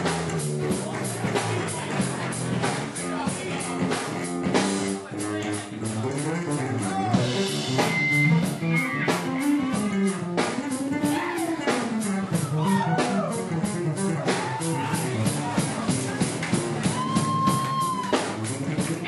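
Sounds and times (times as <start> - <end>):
bending guitar notes: 0.0 - 19.0
drum kit beat: 0.0 - 19.0
electric bass line: 0.0 - 19.0.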